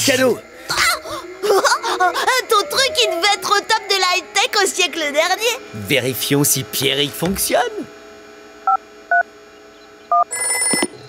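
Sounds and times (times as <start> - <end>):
electronic phone ring: 10.1 - 11.0
phone keypad beeps: 10.1 - 11.0.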